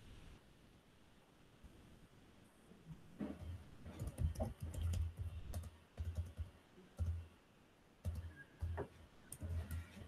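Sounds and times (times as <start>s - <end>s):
typing on computer keyboard: 3.4s - 7.3s, 8.0s - 10.0s.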